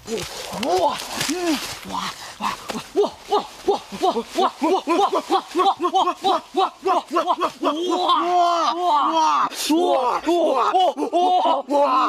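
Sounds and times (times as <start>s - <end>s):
man making hooting calls: 2.4s - 11.6s.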